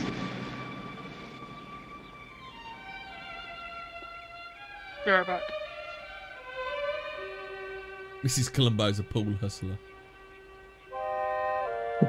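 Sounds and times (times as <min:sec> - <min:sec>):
road noise: 0:00.0 - 0:06.4
string music: 0:00.0 - 0:12.0.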